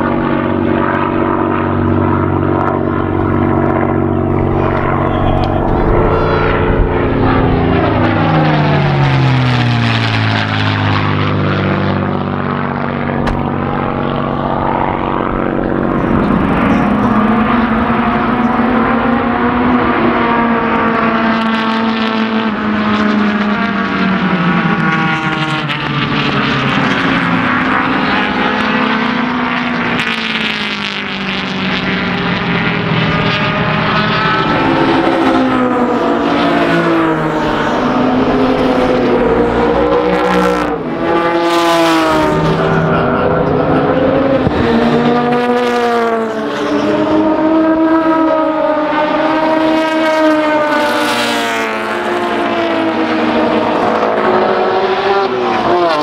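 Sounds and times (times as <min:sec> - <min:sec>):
propeller plane flying over: 0:00.0 - 0:56.0
racing cars passing: 0:00.0 - 0:56.0.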